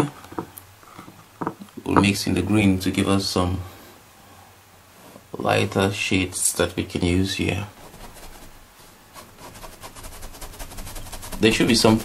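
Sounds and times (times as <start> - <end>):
paintbrush scrubbing paint: 7.8 - 12.0.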